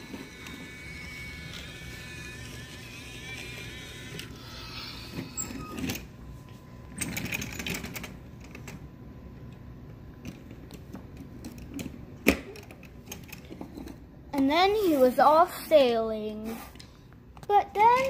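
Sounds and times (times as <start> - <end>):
toy train motor whirring: 0.0 - 6.1, 16.4 - 16.9.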